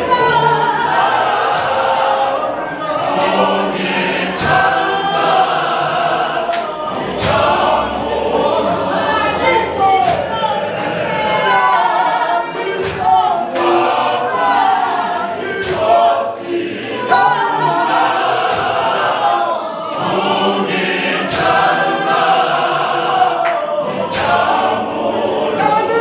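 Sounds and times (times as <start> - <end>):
choir singing unaccompanied: 0.0 - 26.0
sharp hand claps: 0.9 - 2.5, 4.1 - 7.8, 9.4 - 16.2, 18.2 - 19.2, 21.1 - 25.0.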